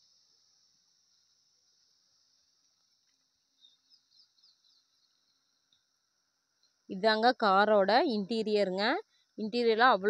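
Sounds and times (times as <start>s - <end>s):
high insect hum: 0.0s - 10.0s
insect chirps: 0.0s - 10.0s.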